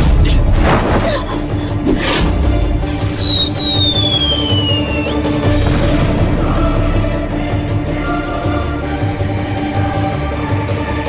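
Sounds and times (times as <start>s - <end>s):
background music: 0.0s - 11.0s
signal rocket whistle: 2.8s - 5.3s.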